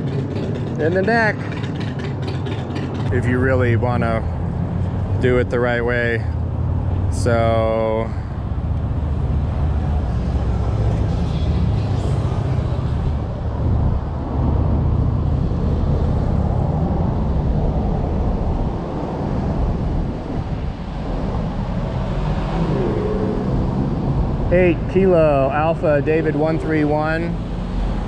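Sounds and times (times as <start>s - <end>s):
cars passing and idling: 0.0s - 28.0s.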